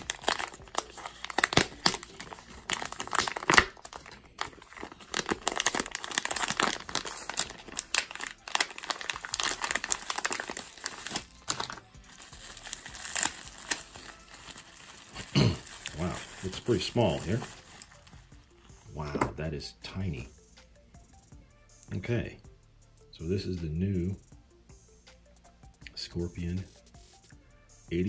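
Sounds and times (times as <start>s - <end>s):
plastic packaging crinkling: 0.0s - 18.2s.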